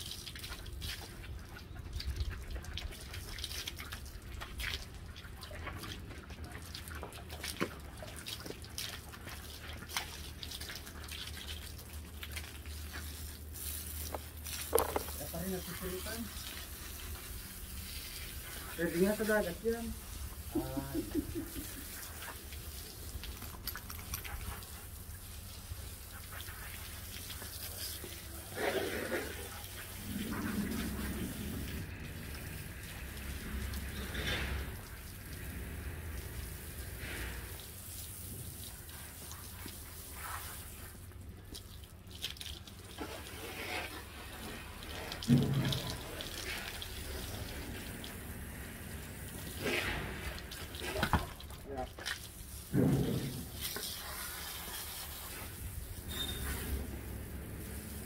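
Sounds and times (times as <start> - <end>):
hose water spraying and splashing: 0.0 - 58.0.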